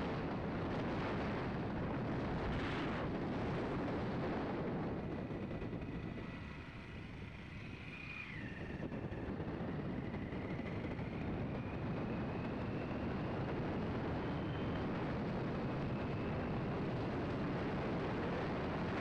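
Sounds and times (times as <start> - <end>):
vehicle rumble and wind rush: 0.0 - 19.0.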